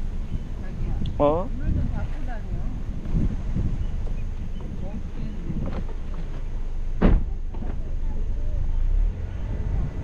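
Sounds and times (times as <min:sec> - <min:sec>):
car rolling rumble: 0:00.0 - 0:10.0.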